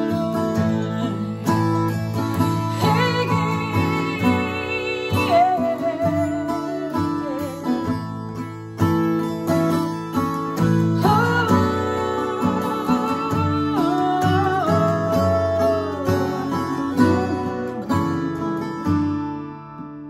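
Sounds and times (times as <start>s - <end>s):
held wavering melody line: 0.0s - 8.4s
acoustic guitar strumming: 0.0s - 20.0s.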